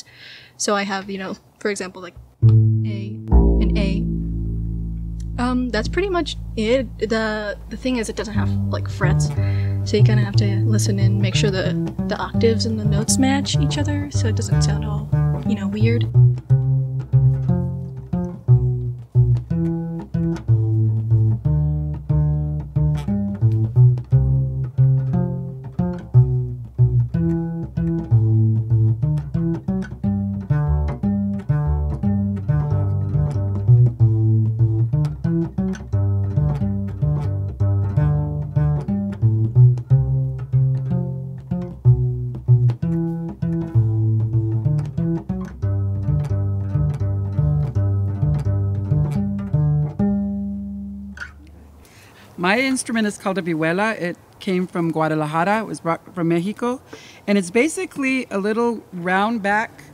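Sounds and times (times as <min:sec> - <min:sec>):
plucked bass guitar low notes: 0:02.2 - 0:51.8.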